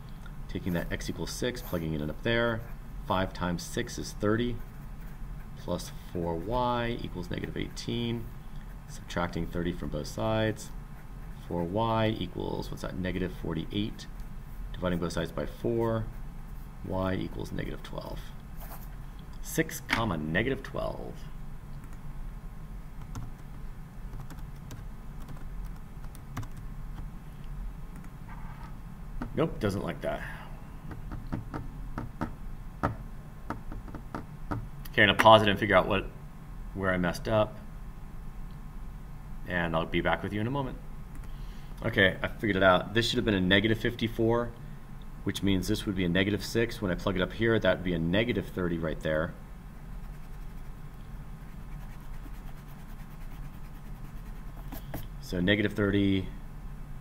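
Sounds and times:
low steady hum: 0:00.0 - 0:57.0
eraser rubbing on paper: 0:50.0 - 0:50.8, 0:51.4 - 0:55.1.

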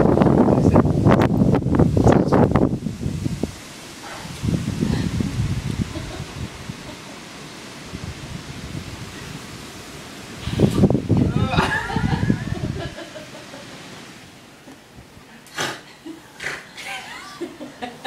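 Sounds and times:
wind buffeting microphone: 0:00.0 - 0:14.2.

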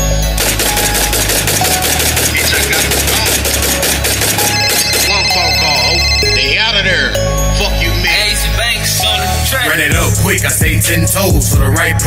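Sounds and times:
deep bass line: 0:02.2 - 0:12.0.

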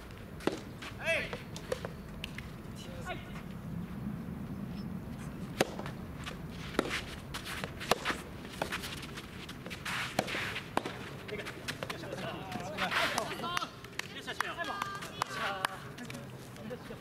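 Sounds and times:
tennis ball taps: 0:05.6 - 0:05.9.

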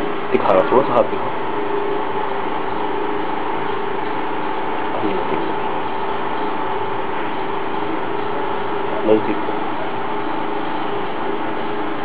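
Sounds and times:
faint steady tones: 0:00.0 - 0:12.0
steady mechanical hum: 0:00.0 - 0:12.0.

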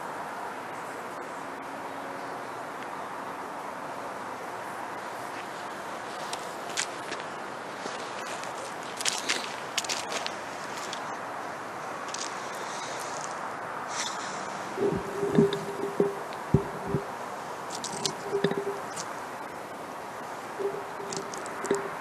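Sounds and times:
steady background hiss: 0:00.0 - 0:22.0
footsteps crunching on dry leaves: 0:05.3 - 0:11.2
sharp crackles: 0:17.7 - 0:19.2.

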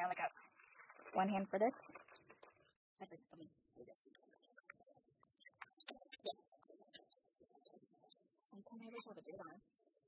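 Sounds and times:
packaging rustling and crinkling: 0:00.0 - 0:02.8.

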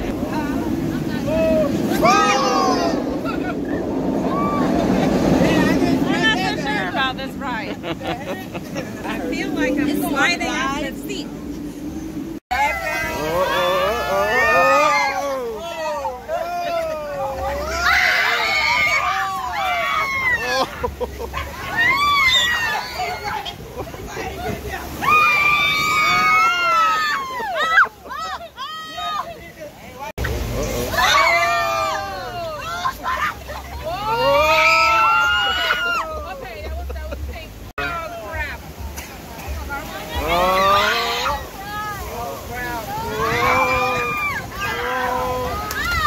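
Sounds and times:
people shrieking and laughing: 0:00.0 - 0:06.9, 0:12.6 - 0:29.4, 0:30.2 - 0:37.5, 0:40.1 - 0:46.0
rushing river rapids: 0:00.0 - 0:46.0
whitewater sloshing: 0:00.0 - 0:46.0.

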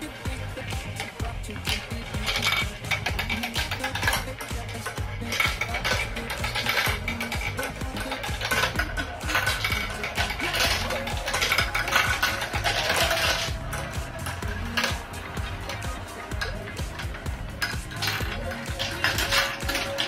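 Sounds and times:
marbles rolling on plastic track: 0:00.0 - 0:20.0.

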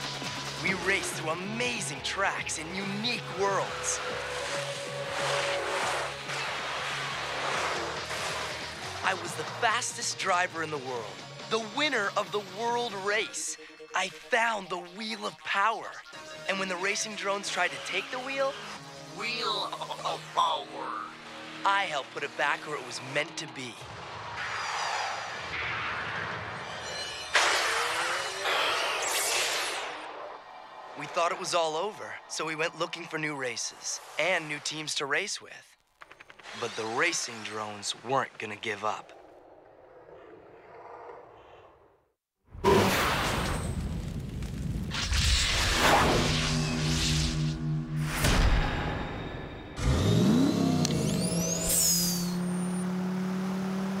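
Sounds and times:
race car engine revving: 0:00.4 - 0:09.6, 0:27.4 - 0:30.0, 0:49.8 - 0:54.0
cars whooshing past: 0:03.3 - 0:09.0, 0:27.4 - 0:30.5.

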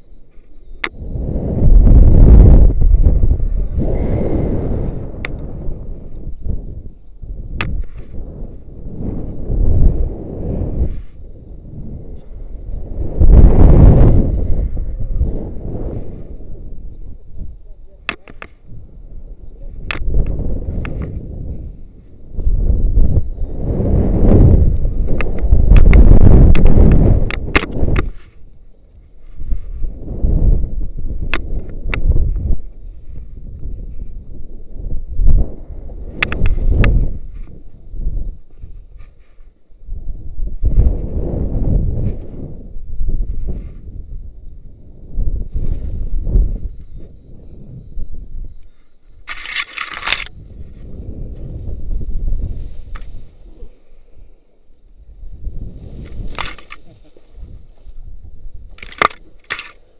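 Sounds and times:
wind rushing over microphone: 0:00.0 - 0:59.9
rope gear clicks: 0:49.2 - 0:50.4, 0:58.7 - 0:59.8.

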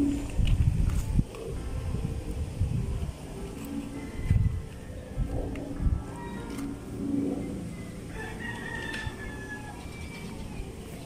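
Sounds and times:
low outdoor background noise: 0:00.0 - 0:11.0
drawn-out bird call: 0:06.0 - 0:11.0.

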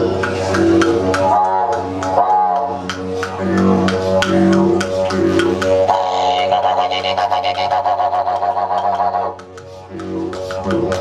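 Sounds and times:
didgeridoo drone: 0:00.0 - 0:11.0.

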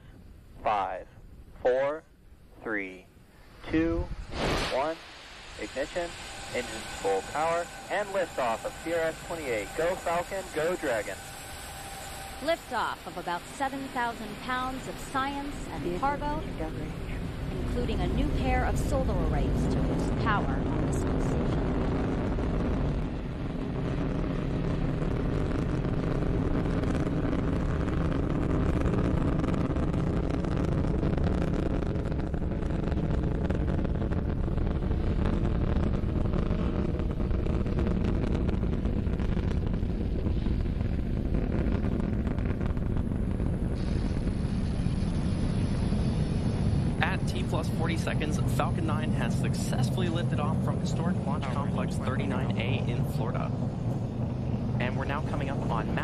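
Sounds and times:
deep rocket engine rumble: 0:00.0 - 0:56.0
thin high steady whine: 0:00.0 - 0:56.0
crackling: 0:00.6 - 0:56.0.

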